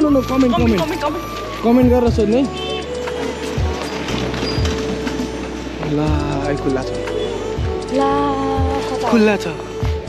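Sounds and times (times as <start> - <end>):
background music with held bass notes: 0.0 - 10.0.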